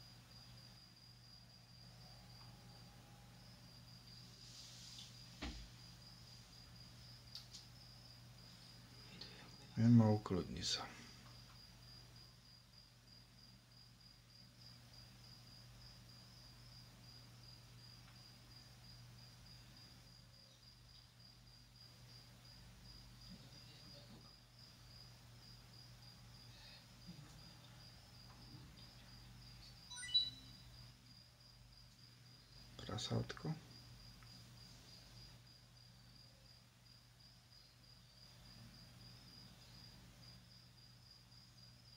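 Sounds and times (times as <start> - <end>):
high-pitched tone: 29.9 - 30.6.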